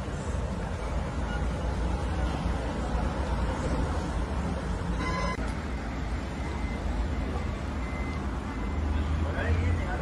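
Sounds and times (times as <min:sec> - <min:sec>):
background traffic rumble: 0:00.0 - 0:10.0.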